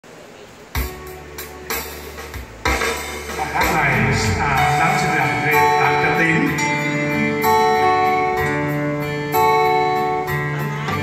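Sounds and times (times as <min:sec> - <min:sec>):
keyboard accompaniment chords: 0:00.8 - 0:11.0
man singing or speaking: 0:03.3 - 0:07.0.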